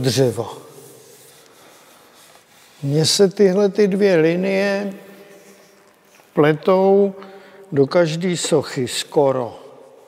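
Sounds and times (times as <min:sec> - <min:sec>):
man speaking: 0:00.0 - 0:00.7, 0:02.8 - 0:05.2, 0:06.3 - 0:09.8
hands rubbing smooth wood: 0:00.0 - 0:07.0.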